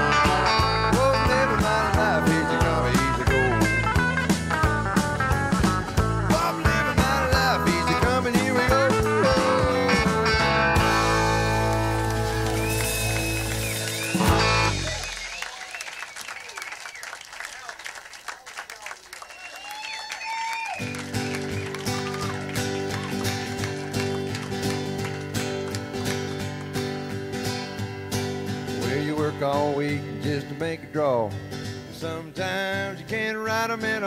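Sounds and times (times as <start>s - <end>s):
acoustic guitar strumming: 0.0s - 15.3s, 20.9s - 34.0s
crowd voices and whoops: 12.1s - 17.7s, 19.2s - 24.6s.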